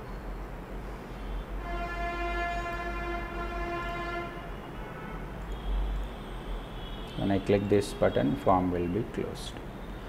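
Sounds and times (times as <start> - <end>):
steady horn-like tone: 1.5 - 8.4.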